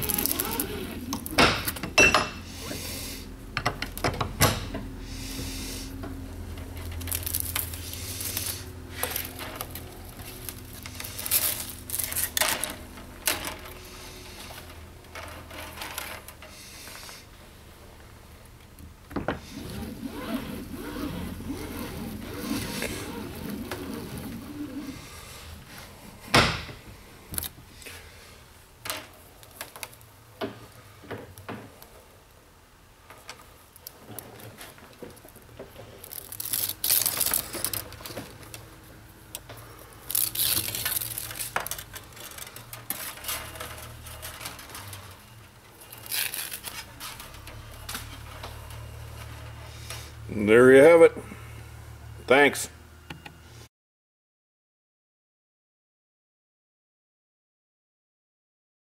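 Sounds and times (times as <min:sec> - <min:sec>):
wire rustling when handled: 0:00.0 - 0:01.8, 0:06.5 - 0:17.2, 0:33.2 - 0:50.1
wire stripper machine running: 0:00.0 - 0:01.8.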